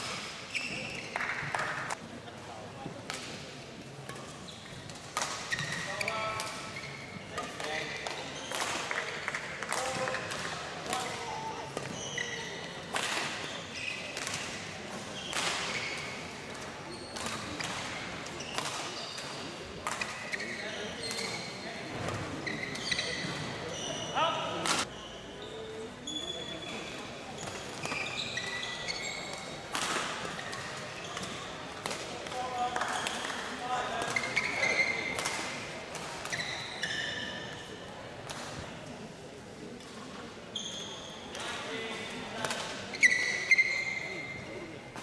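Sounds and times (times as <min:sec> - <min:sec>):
shoes squeaking on floor: 0:00.2 - 0:01.9, 0:04.1 - 0:10.4, 0:11.0 - 0:29.7, 0:30.3 - 0:31.7, 0:32.4 - 0:35.3, 0:36.2 - 0:37.8, 0:40.5 - 0:42.2, 0:42.8 - 0:44.8.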